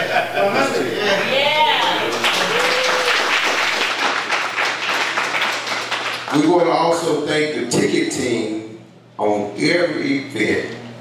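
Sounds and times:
shout from crowd: 0:01.8 - 0:03.3
audience applauding: 0:01.8 - 0:06.5.

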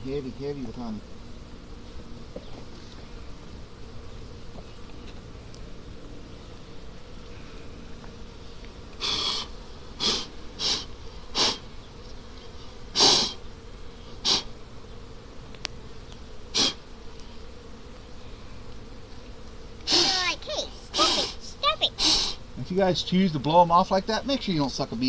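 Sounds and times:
honeybees buzzing: 0:00.0 - 0:25.0
sharp puffs of breath: 0:09.0 - 0:11.6, 0:22.0 - 0:22.4.

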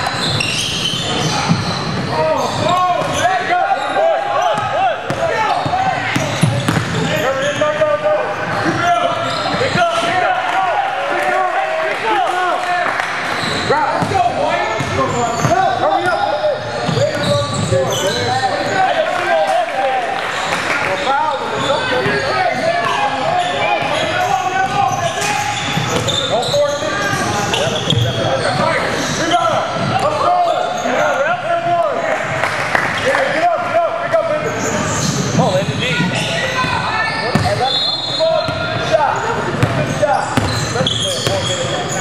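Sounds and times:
sneakers squeaking: 0:00.0 - 0:10.3, 0:13.0 - 0:31.8, 0:34.1 - 0:42.0
echoing voices: 0:00.0 - 0:42.0
basketball bouncing: 0:04.6 - 0:07.1, 0:36.6 - 0:37.6, 0:39.6 - 0:39.8, 0:40.4 - 0:41.5.

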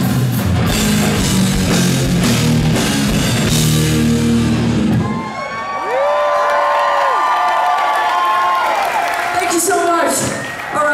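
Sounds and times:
live hard rock band: 0:00.0 - 0:05.4
crowd cheering: 0:04.3 - 0:10.9.

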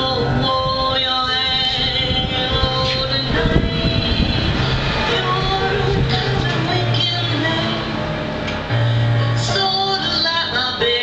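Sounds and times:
piano chords: 0:00.0 - 0:11.0
woman singing: 0:00.0 - 0:11.0.

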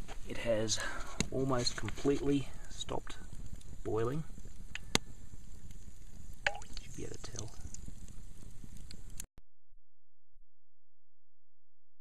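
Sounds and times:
hot grease popping and crackling: 0:00.8 - 0:09.3.

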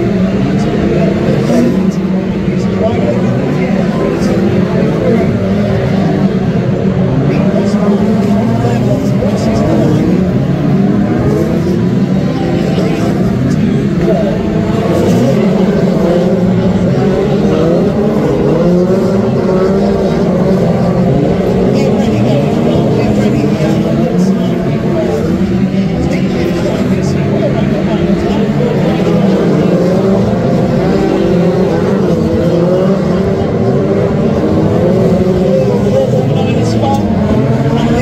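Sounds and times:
racing car engines: 0:00.0 - 0:38.0.

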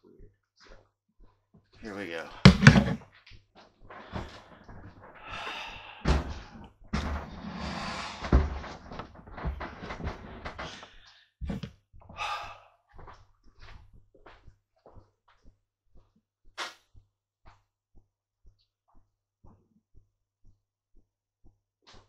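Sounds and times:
knocks and thumps: 0:02.3 - 0:03.0, 0:06.0 - 0:11.8
handling noise rustling: 0:02.4 - 0:03.0.

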